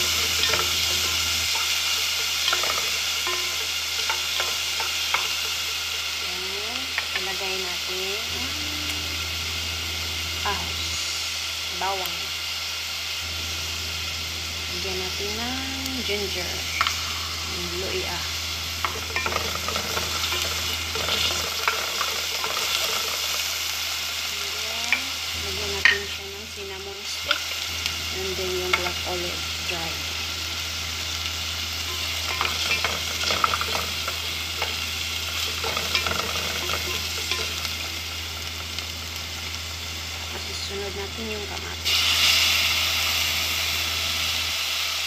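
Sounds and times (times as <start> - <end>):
utensil scraping metal pot: 0.0 - 7.6, 18.8 - 27.6, 31.8 - 37.9
spices sizzling in hot oil: 0.0 - 45.0.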